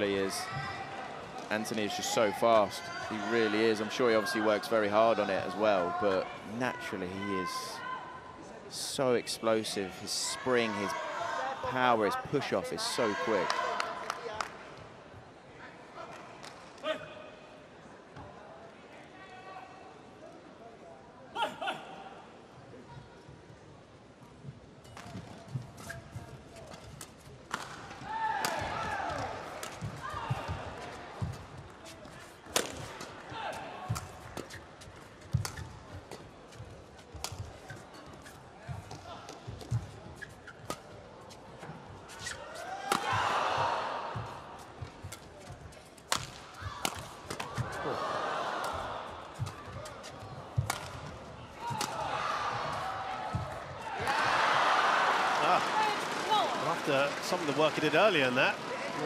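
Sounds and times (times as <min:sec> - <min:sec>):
racquets hitting shuttlecock: 0:26.7 - 0:30.6, 0:32.5 - 0:33.2, 0:35.3 - 0:36.2, 0:42.9 - 0:43.3, 0:46.1 - 0:47.7, 0:49.4 - 0:52.1
crowd voices: 0:41.2 - 0:59.0.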